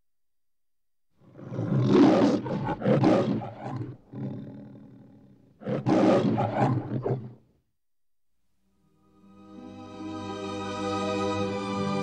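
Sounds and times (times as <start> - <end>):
lion roaring: 1.2 - 7.4
lion growl: 1.2 - 7.5.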